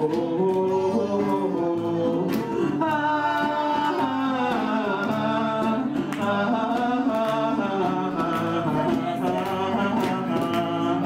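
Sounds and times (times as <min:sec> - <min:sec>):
person singing: 0:00.0 - 0:11.0.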